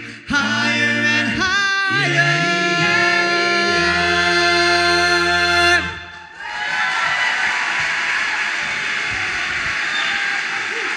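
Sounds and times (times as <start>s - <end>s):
audience applause: 6.5s - 10.9s.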